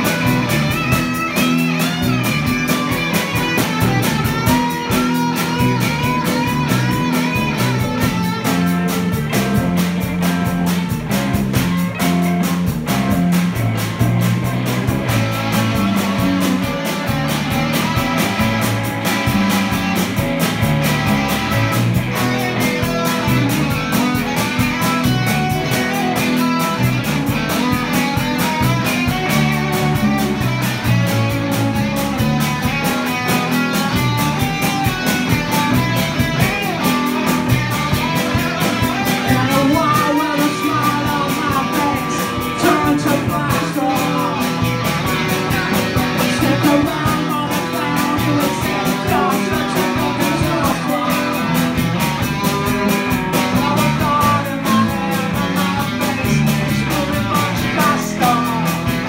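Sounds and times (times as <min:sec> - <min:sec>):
bass guitar: 0:00.0 - 0:59.0
drum kit: 0:00.0 - 0:59.0
electric guitars: 0:00.0 - 0:59.0.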